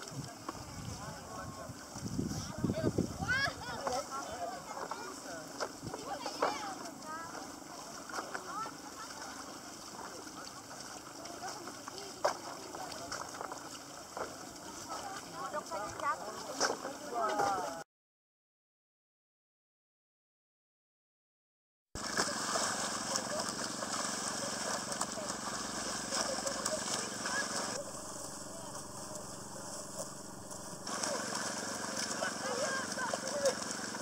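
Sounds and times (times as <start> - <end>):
water sloshing: 0.0 - 17.8, 22.0 - 34.0
small engine running: 22.0 - 34.0
group of people chattering: 24.3 - 34.0.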